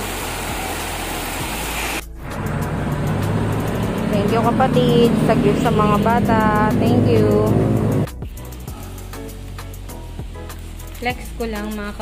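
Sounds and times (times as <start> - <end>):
heavy rain hiss: 0.0 - 12.0
low hum: 2.1 - 8.1.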